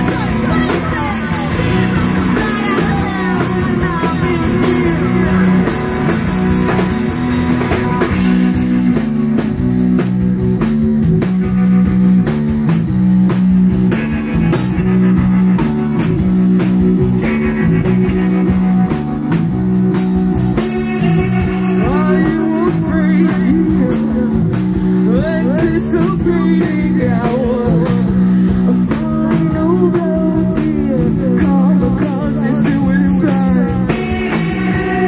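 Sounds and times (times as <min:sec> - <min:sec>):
bass guitar line: 0:00.0 - 0:35.0
drum kit beat: 0:00.0 - 0:35.0
electric guitars: 0:00.0 - 0:35.0.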